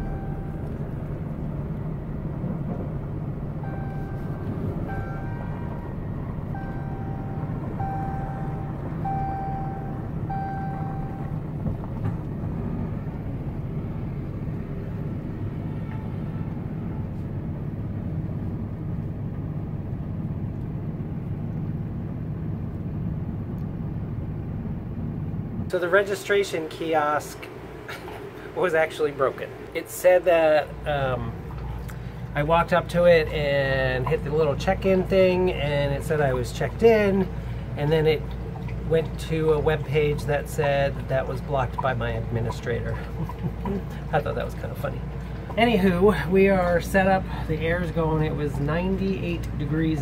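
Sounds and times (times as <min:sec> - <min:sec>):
short electronic beeps: 0:00.0 - 0:00.8, 0:03.6 - 0:05.5, 0:06.6 - 0:11.4
road noise: 0:00.0 - 0:50.0
truck engine rumble: 0:00.0 - 0:50.0.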